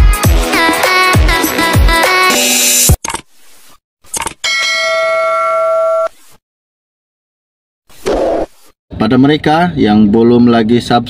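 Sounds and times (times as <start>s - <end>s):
bell ding: 4.4s - 6.1s.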